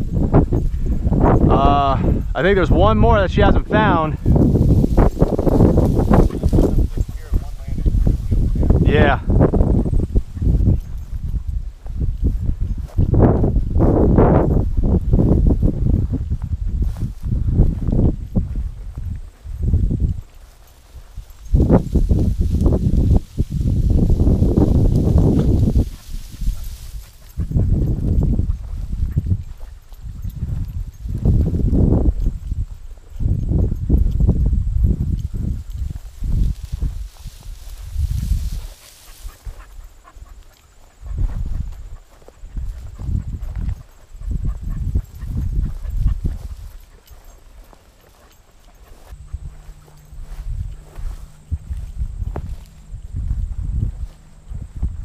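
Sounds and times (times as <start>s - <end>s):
wind buffeting microphone: 0.0s - 55.0s
grass brushing: 2.6s - 10.6s, 19.7s - 29.7s, 34.8s - 54.9s
footsteps in grass: 2.6s - 55.0s.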